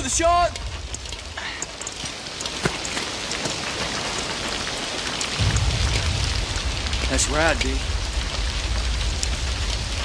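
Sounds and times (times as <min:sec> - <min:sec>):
heavy rain on hard surfaces: 0:00.0 - 0:10.0
low rumble: 0:05.4 - 0:10.0.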